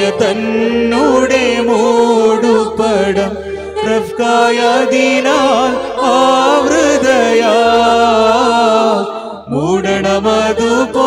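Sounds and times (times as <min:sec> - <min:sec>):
church choir chanting: 0:00.0 - 0:11.0.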